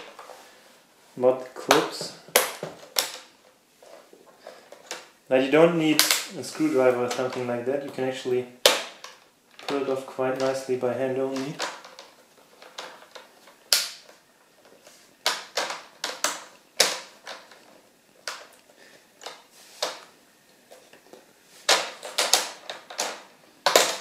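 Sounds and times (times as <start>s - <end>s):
plastic clips snapping loose: 21.7s - 24.0s.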